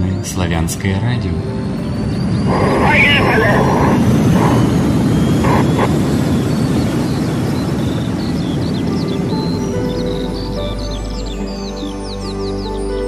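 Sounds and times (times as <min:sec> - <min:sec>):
rocket engine roar: 0:01.6 - 0:11.3.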